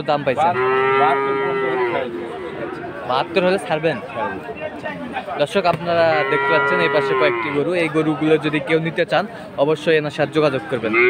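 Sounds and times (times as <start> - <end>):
faint background noise: 0.0 - 11.0
cow mooing: 0.4 - 3.4, 6.1 - 7.6.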